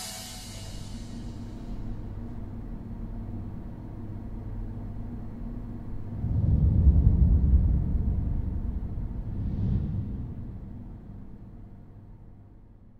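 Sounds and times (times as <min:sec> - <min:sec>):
deep low rumble: 0:05.8 - 0:12.2.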